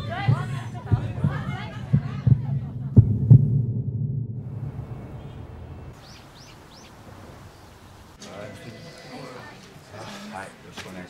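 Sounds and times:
heartbeat thumps: 0.0 - 5.1
low hum: 0.0 - 6.0
faint outdoor hiss: 4.4 - 11.0
bird chirps: 5.1 - 7.8.

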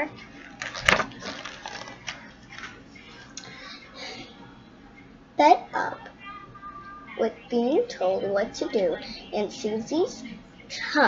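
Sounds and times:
paper page turning: 0.4 - 2.8.

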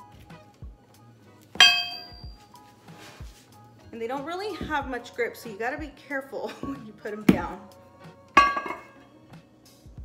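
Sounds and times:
weight plates clanging: 8.4 - 9.0.

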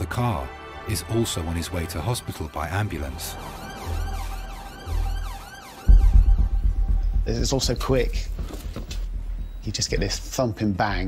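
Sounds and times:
ambulance siren yelping: 2.9 - 7.2
deep bass thud: 5.9 - 8.3.

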